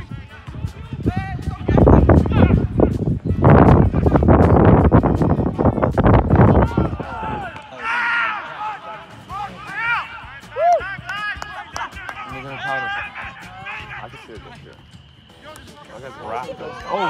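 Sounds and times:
people shouting: 0.4 - 3.0, 6.5 - 14.7, 15.8 - 17.0.

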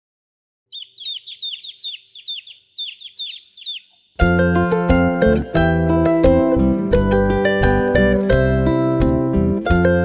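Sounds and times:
baby chicks peeping: 0.7 - 4.3.

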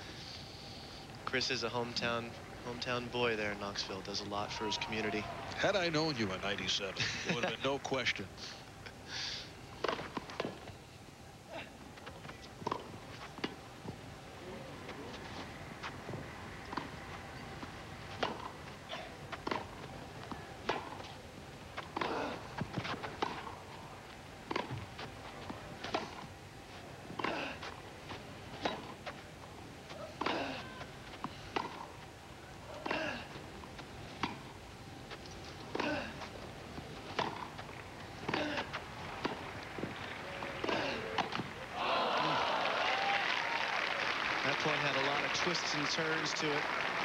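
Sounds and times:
tennis balls struck by rackets: 9.8 - 10.6, 12.3 - 14.0, 15.8 - 23.8, 24.4 - 26.4, 27.0 - 27.8, 28.6 - 29.2, 29.9 - 32.0, 32.7 - 41.6
tennis balls bouncing on grass: 12.0 - 14.0, 14.8 - 32.1, 32.7 - 41.7.

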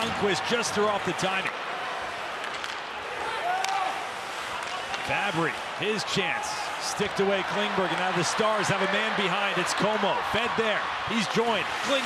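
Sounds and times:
skates and sticks clattering on ice: 2.3 - 5.7, 11.1 - 12.0.

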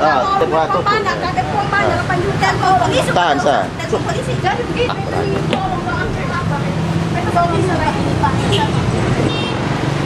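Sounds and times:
people talking: 0.0 - 9.3.

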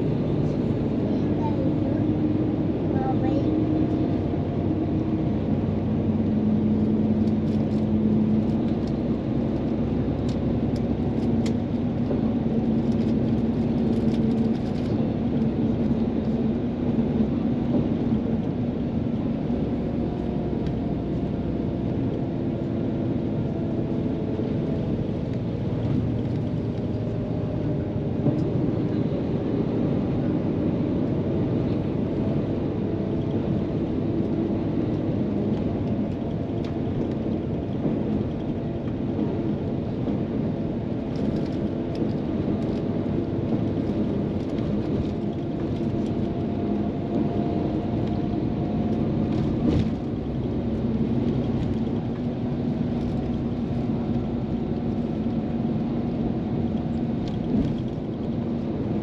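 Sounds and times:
coach engine and road noise: 0.0 - 59.0.

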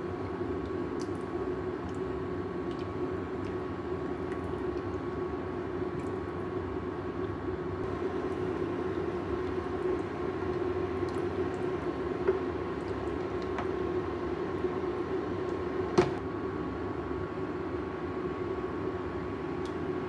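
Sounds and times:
broth simmering: 0.0 - 16.2
faint hum: 0.0 - 16.6.

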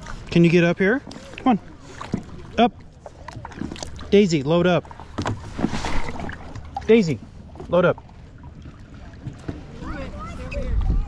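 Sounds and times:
river water splashing: 0.0 - 11.0.

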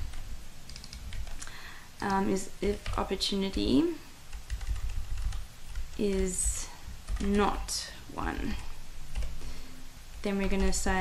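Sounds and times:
computer keyboard typing: 0.0 - 3.6, 4.3 - 7.7, 9.1 - 9.4, 10.2 - 11.0.

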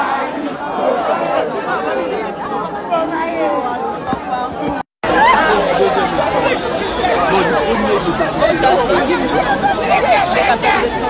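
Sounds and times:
dense crowd chattering: 0.0 - 11.0.

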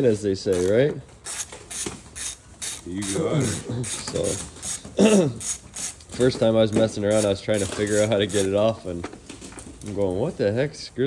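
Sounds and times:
ratchet wrench clicking: 0.5 - 8.6.

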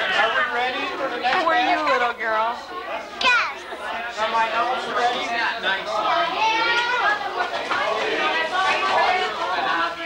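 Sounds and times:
children chattering: 1.0 - 10.0.

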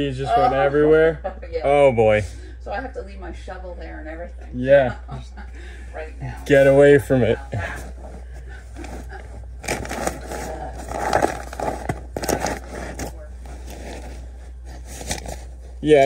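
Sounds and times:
insulation rustling and crackling: 6.4 - 16.0.

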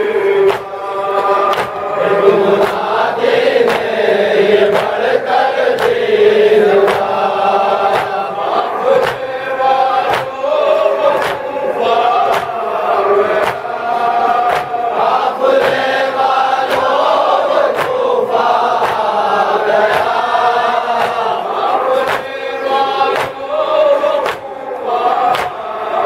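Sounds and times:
men chanting a lament: 0.0 - 26.0
chest-beating slaps in unison: 0.2 - 26.0.

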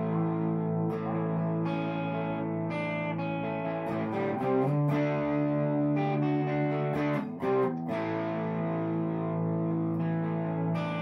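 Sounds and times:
electric guitar through tube amp: 0.0 - 11.0.

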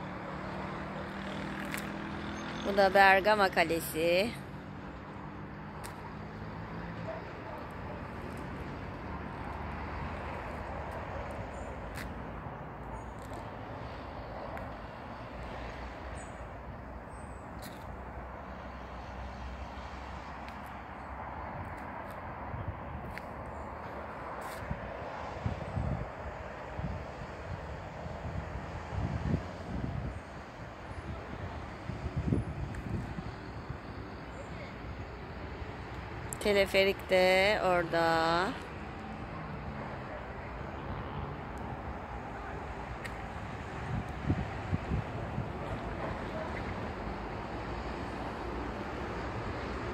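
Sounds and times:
outdoor background noise: 0.0 - 49.9.

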